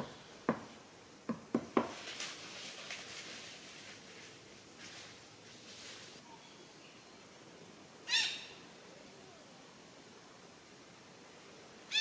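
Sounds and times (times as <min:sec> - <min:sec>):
parakeet squawk: 0:08.1 - 0:08.6.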